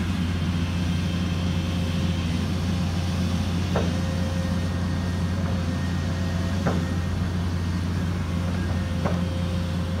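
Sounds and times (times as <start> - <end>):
large engine running steadily: 0.0 - 10.0.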